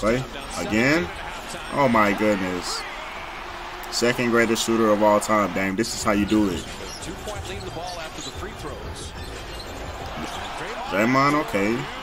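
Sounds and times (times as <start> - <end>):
crowd hubbub: 0.2 - 7.7, 8.6 - 12.0.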